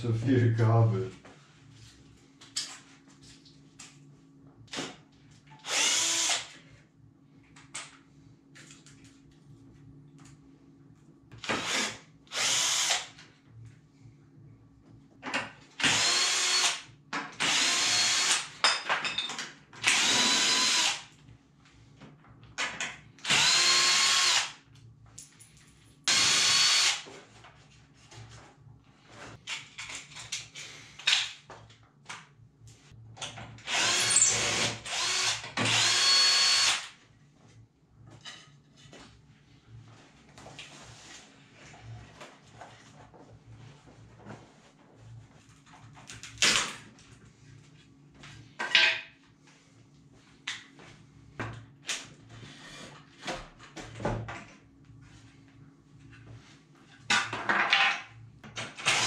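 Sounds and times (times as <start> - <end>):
cordless drill running in bursts: 5.6 - 6.5, 11.5 - 13.1, 15.8 - 16.8, 17.4 - 18.5, 19.8 - 21.0, 23.2 - 24.6, 26.1 - 27.0, 33.7 - 36.9.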